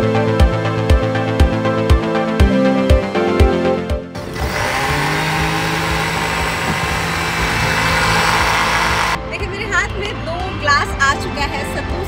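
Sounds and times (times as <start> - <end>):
electric blender running: 4.2 - 9.2.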